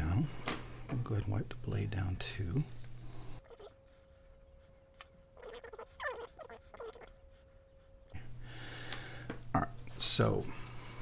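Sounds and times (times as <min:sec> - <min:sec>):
cloth squeaking on steel: 0:05.4 - 0:07.1.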